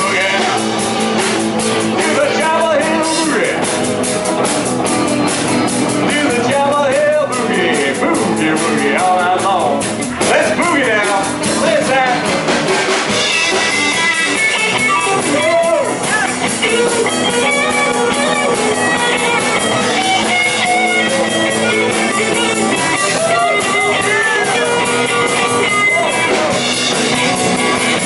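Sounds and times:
electric guitar lead with bent notes: 0.0 - 28.0
live rock and roll band: 0.0 - 28.0.

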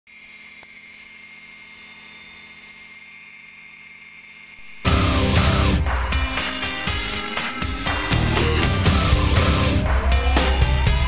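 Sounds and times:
loud rock music: 4.6 - 11.0.

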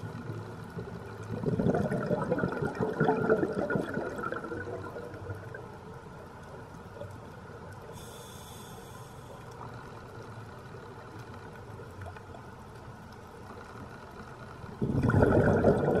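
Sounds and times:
low wash of water: 0.0 - 6.8, 14.6 - 16.0
rushing burst of bubbles: 1.3 - 5.3, 14.8 - 16.0
faint clicks: 5.1 - 14.8.

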